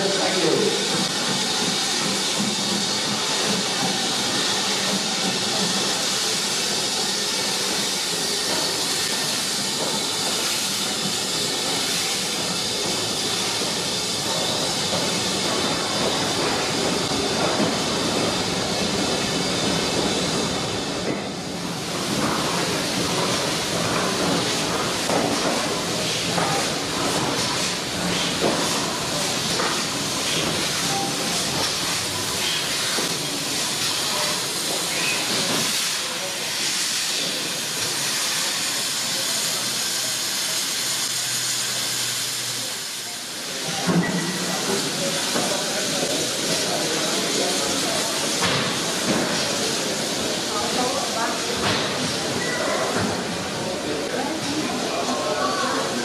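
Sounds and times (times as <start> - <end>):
steam locomotive hissing: 0.0 - 56.0.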